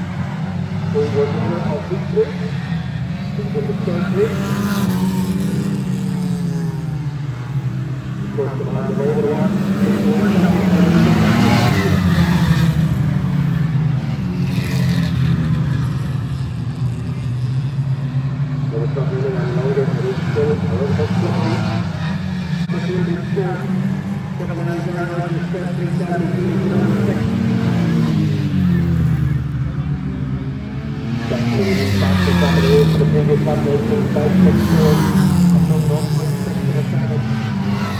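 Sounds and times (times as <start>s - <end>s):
racing car engines: 0.0s - 37.9s.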